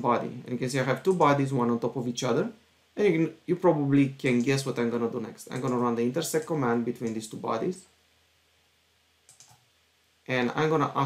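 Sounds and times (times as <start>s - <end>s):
computer mouse clicks: 5.5s - 5.9s, 9.3s - 9.6s.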